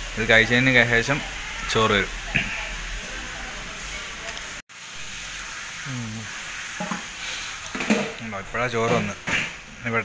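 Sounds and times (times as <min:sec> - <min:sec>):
steady hissing noise: 0:00.0 - 0:10.0
man speaking: 0:08.2 - 0:09.2.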